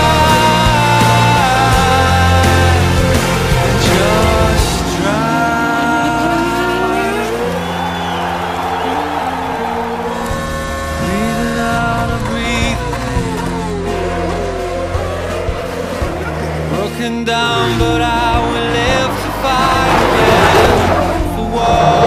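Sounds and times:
race car engine revving: 0:00.0 - 0:22.0
rock music: 0:00.0 - 0:22.0.

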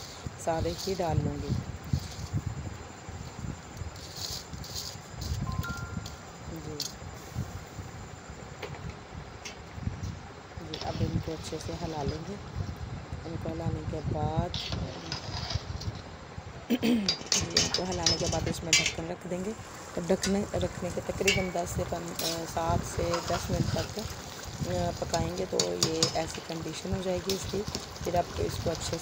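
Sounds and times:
metal spoon stirring rice in pot: 0:24.7 - 0:29.0.

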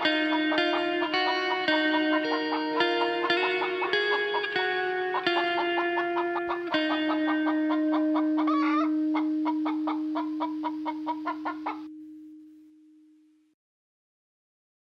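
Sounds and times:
held guitar note: 0:00.0 - 0:13.5
chicken clucking rapidly: 0:05.2 - 0:11.8.

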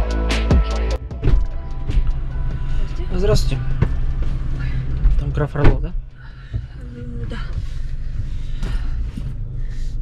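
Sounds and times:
music in car cabin: 0:00.0 - 0:10.0
car door shutting: 0:03.3 - 0:09.5.

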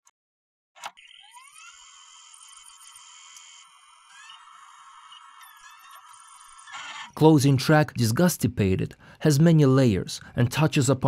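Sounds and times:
electronic whine: 0:01.0 - 0:07.2.

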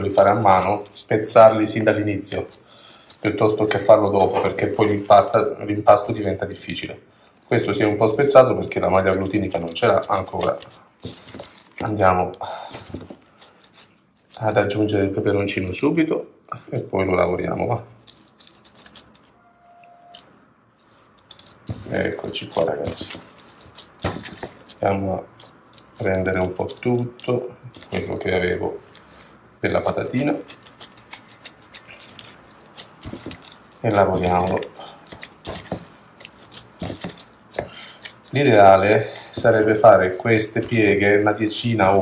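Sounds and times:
hands kneading dough: 0:00.0 - 0:42.0.

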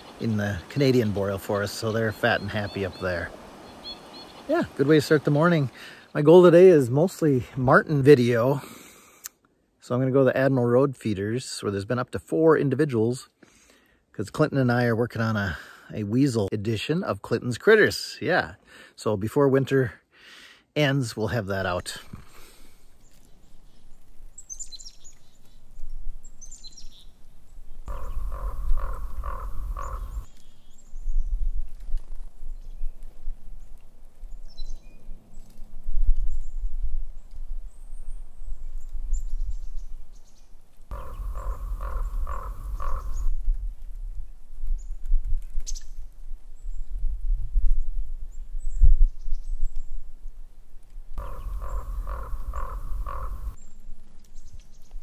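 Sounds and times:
low wind rumble: 0:23.4 - 0:55.0
bird calling repeated notes: 0:27.9 - 0:30.3, 0:40.9 - 0:43.3, 0:51.2 - 0:53.6.

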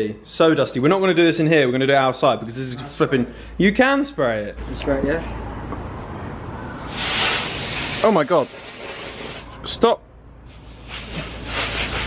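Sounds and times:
compressed air can hissing: 0:06.7 - 0:09.6, 0:10.5 - 0:12.0.

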